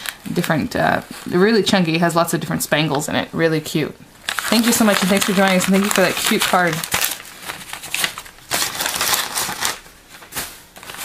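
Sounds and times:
packaging crinkling and rustling: 4.2 - 11.0.

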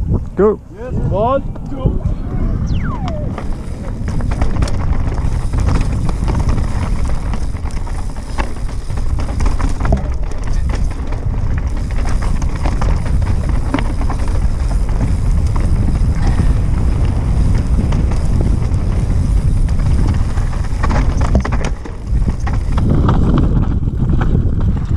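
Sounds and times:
wind rumble on microphone: 0.0 - 24.9
bike clicks and rattles: 3.3 - 24.9
tyres crunching over loose stones: 3.4 - 24.9.

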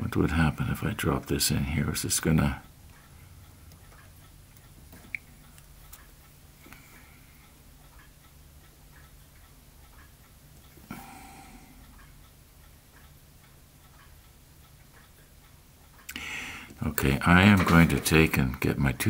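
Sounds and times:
low steady hum: 0.0 - 19.0
faint regular ticking: 0.1 - 19.0.

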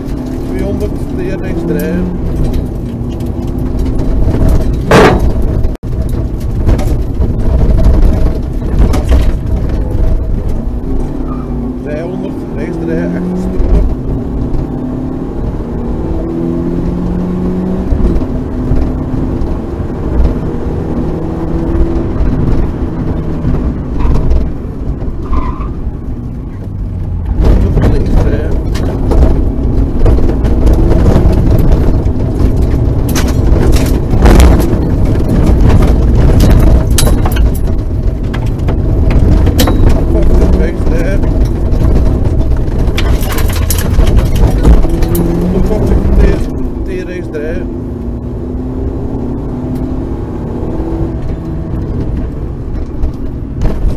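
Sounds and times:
rally car engine from inside: 0.0 - 53.9.

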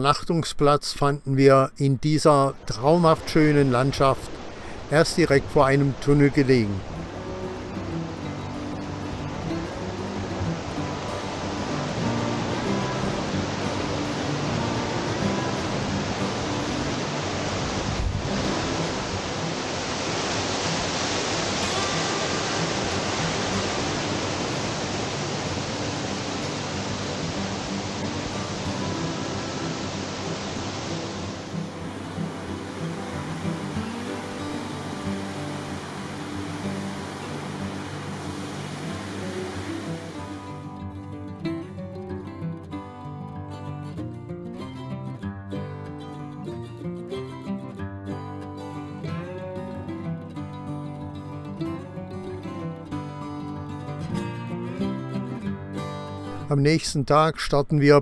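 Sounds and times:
rushing stream and waterfall: 0.0 - 42.4, 48.6 - 58.0
background music with held notes: 6.0 - 56.5.

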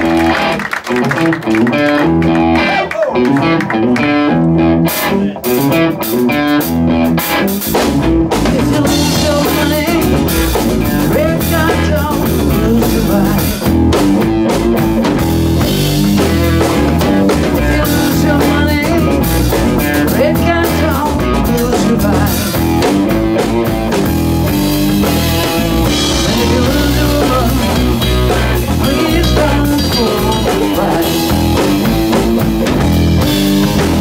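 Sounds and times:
drum kit: 0.0 - 34.0
electric bass guitar: 0.0 - 34.0
electric guitar riff: 0.0 - 34.0.

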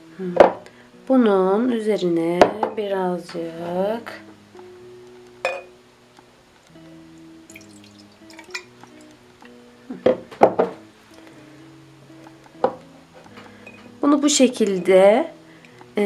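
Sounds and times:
soft background music: 0.0 - 16.0
glass knocks and clinks: 5.4 - 5.7.

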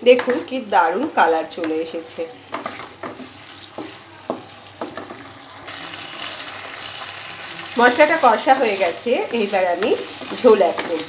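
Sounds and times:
frying sizzle: 0.0 - 11.0
spatula scraping a wok: 2.5 - 11.0.

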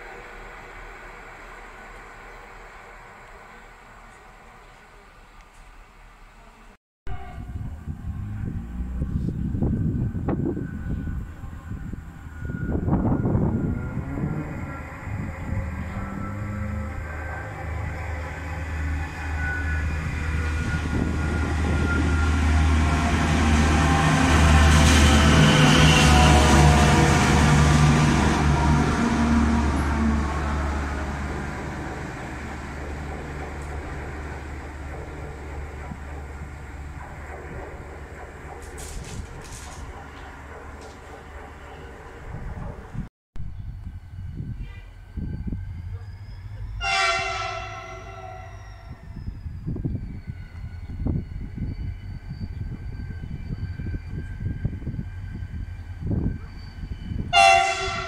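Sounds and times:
diesel locomotive engine throb: 7.1 - 58.0.

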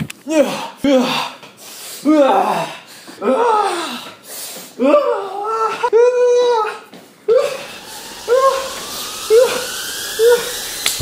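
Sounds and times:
faint rising tone: 7.3 - 11.0.

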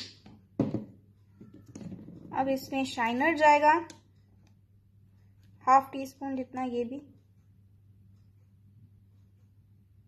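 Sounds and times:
bottle thunk on tabletop: 0.2 - 1.0.

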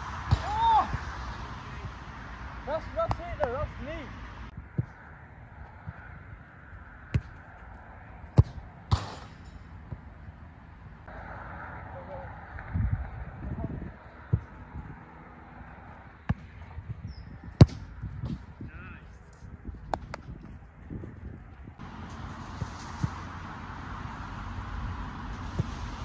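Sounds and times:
outdoor background hiss: 0.0 - 19.8, 20.5 - 26.0
football kick thuds: 7.1 - 7.4, 8.3 - 10.1, 16.2 - 18.6, 25.4 - 26.0.

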